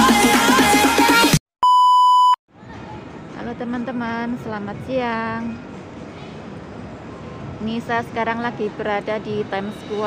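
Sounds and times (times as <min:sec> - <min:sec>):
high electronic beep: 0:01.6 - 0:02.4
faint outdoor background noise: 0:02.5 - 0:10.0.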